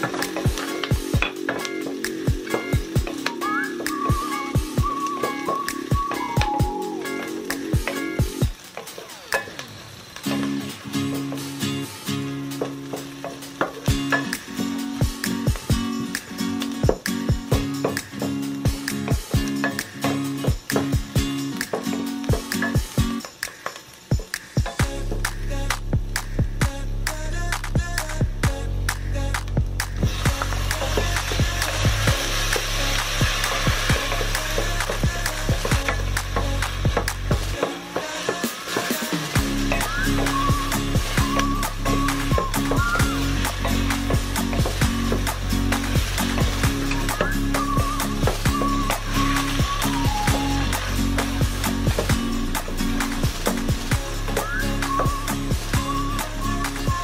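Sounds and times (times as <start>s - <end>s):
background music with steady beat: 0.0s - 9.6s, 10.2s - 57.0s.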